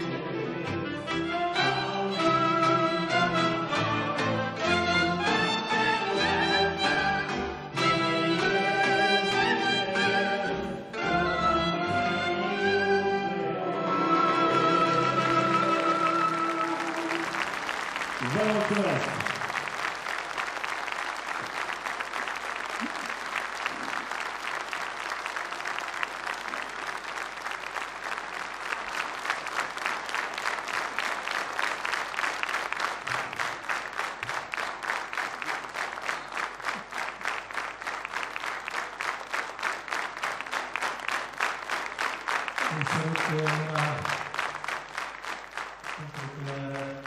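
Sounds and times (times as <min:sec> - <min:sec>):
rhythmic clapping in unison: 0:01.2 - 0:09.6, 0:14.0 - 0:47.0
audience applauding: 0:13.8 - 0:47.0.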